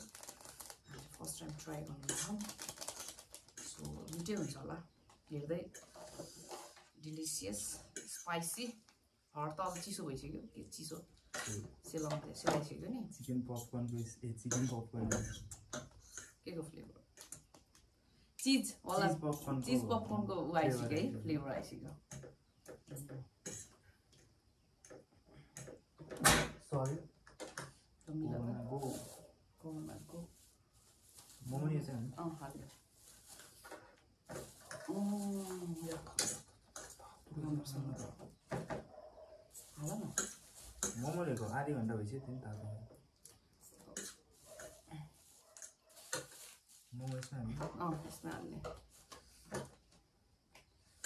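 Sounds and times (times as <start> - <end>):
packaging rustling: 0.0 - 4.6, 45.3 - 47.3
person speaking: 18.8 - 21.2.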